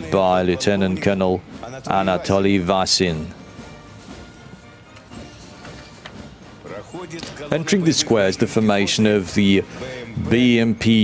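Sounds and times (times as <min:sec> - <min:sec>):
military band playing march: 0:00.0 - 0:10.9.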